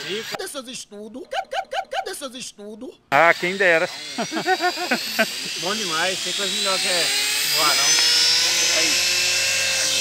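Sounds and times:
model airplane motor whine: 3.2s - 10.0s.

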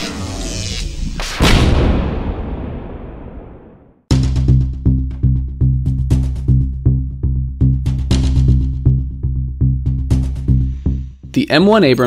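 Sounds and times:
heavy boom with rumbling tail: 1.3s - 4.0s.

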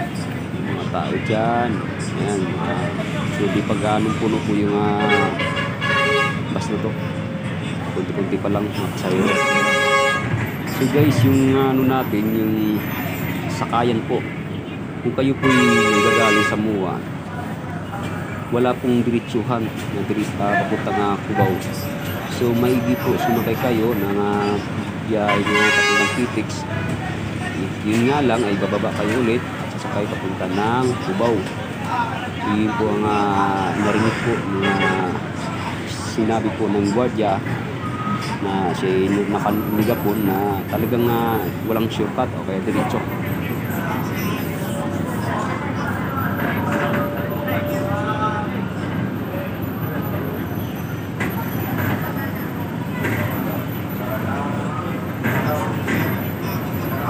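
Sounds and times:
bus running noise: 0.0s - 57.0s
vehicle horn blaring: 4.9s - 6.6s, 9.0s - 11.3s, 15.4s - 16.6s, 25.3s - 26.4s.

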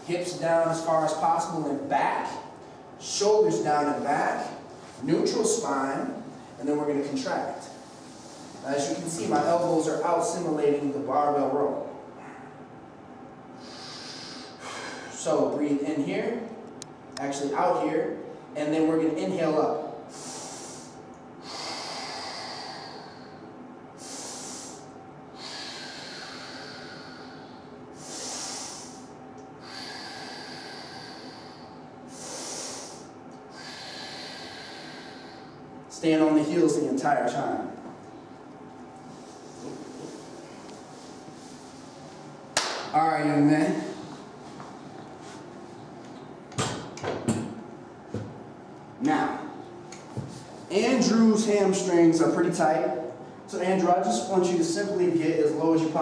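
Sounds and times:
man breathing heavily: 13.6s - 15.2s, 20.0s - 35.7s.

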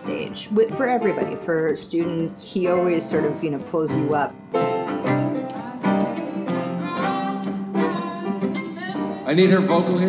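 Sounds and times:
acoustic guitars playing: 0.0s - 10.0s
person singing long notes: 5.5s - 10.0s.

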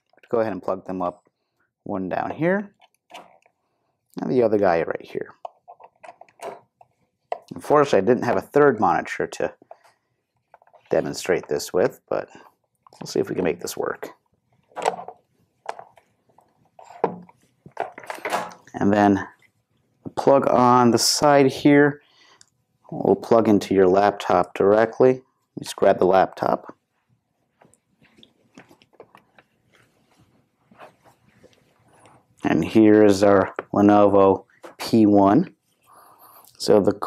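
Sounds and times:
cable handling knocks and rustles: 5.3s - 7.6s, 14.5s - 18.7s, 27.5s - 32.2s.

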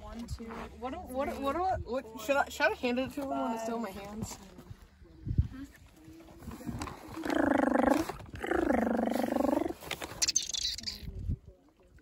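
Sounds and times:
person making rough vocal sounds: 7.3s - 9.8s.

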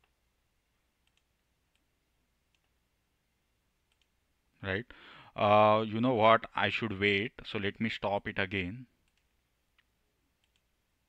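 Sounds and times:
faint computer mouse clicks: 1.0s - 1.9s, 3.9s - 4.1s, 9.0s - 10.7s.

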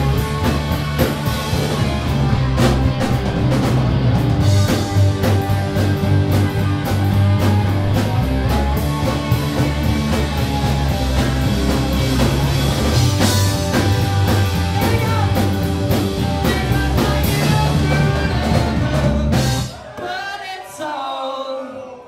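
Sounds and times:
bass guitar: 0.0s - 19.8s
drum kit steady beat: 0.0s - 19.8s
electric guitar: 0.0s - 19.8s.

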